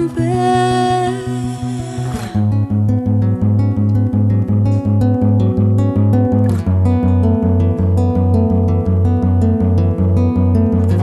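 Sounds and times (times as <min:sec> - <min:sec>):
classical guitar fingerpicked: 0:00.0 - 0:11.0.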